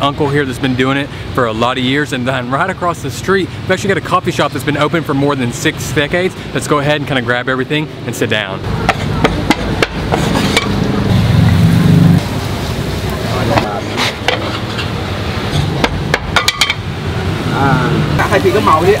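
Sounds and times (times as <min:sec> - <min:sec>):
voices: 0:00.0 - 0:19.0.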